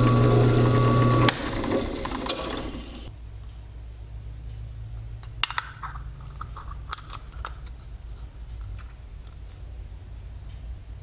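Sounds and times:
scraping: 5.3 - 9.6.

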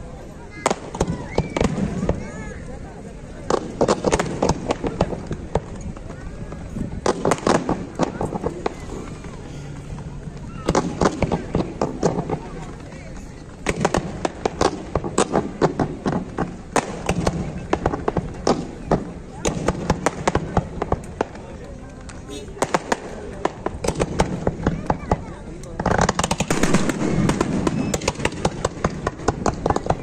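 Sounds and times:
fireworks bangs and crackles: 0.0 - 30.0.

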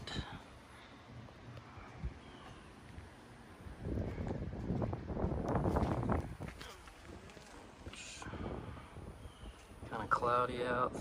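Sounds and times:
wind buffeting microphone: 1.2 - 11.0.

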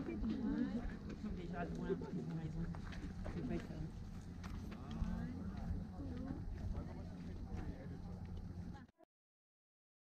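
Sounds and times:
people talking: 0.0 - 9.1.

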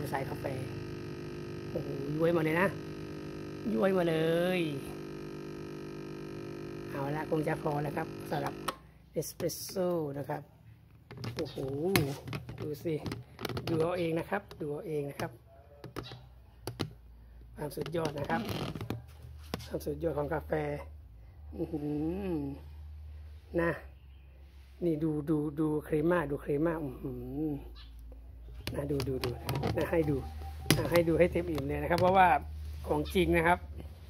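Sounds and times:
espresso pouring into cup: 0.0 - 8.7
espresso machine pump humming: 0.0 - 8.9, 28.7 - 34.0.

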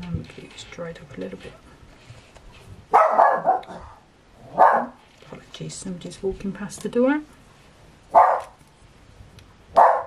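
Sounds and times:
dog barking: 2.9 - 5.0, 8.1 - 8.6, 9.8 - 10.0.

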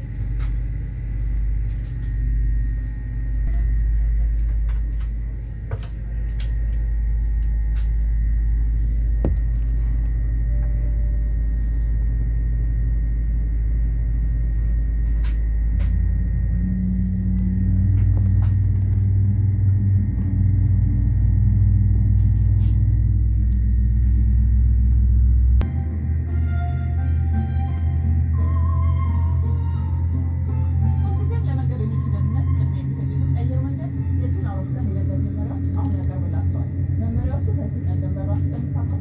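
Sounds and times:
airliner cabin rumble and hum: 0.0 - 39.0
higher hum: 0.0 - 39.0.

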